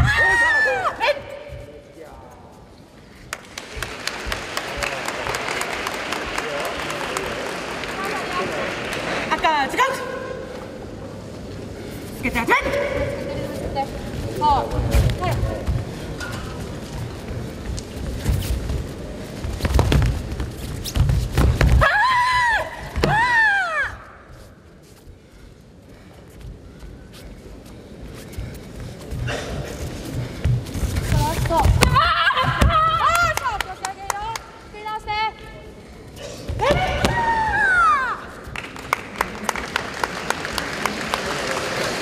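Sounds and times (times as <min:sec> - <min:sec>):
crowd applause: 0:03.3 - 0:09.5, 0:38.4 - 0:42.0.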